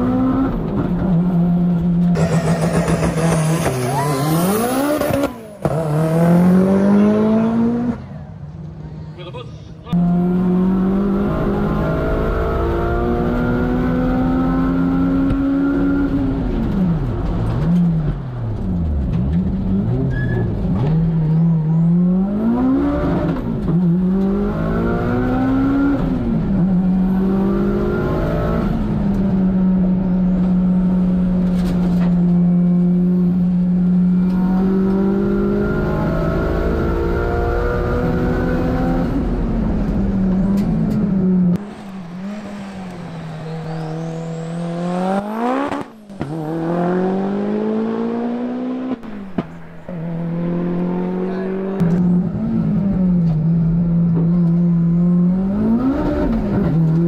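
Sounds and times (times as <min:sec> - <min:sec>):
race car engine revving: 0:00.0 - 0:08.2, 0:09.9 - 0:21.0, 0:21.6 - 0:57.0.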